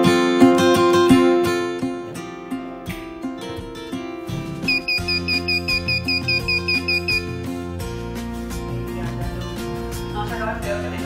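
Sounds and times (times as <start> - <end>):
guitar music: 0.0 - 11.0
buzzer beeping rapidly: 4.7 - 7.4.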